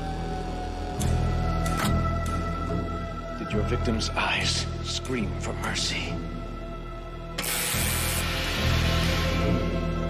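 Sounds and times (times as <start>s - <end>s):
tense music score: 0.0s - 10.0s
gas jet hissing: 7.4s - 9.7s.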